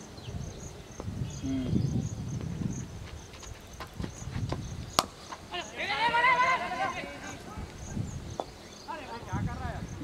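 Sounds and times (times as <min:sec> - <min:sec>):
cricket bat striking ball: 0:05.0 - 0:05.4
player shouting: 0:05.5 - 0:07.4.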